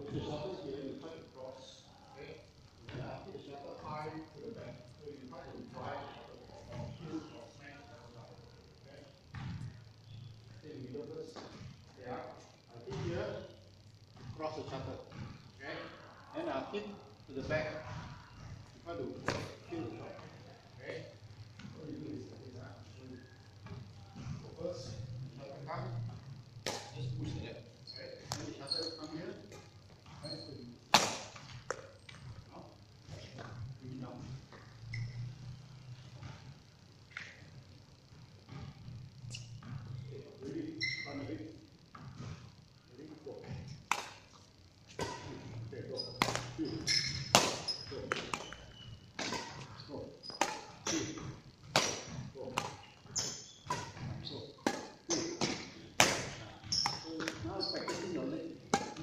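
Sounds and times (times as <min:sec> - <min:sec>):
rackets hitting shuttlecock: 0:26.6 - 0:27.0, 0:30.9 - 0:31.8, 0:43.9 - 0:44.3, 0:46.1 - 0:49.7, 0:50.3 - 0:59.0
shoes squeaking on court: 0:26.6 - 0:32.4, 0:33.1 - 0:37.4, 0:38.4 - 0:41.3, 0:43.4 - 0:59.0.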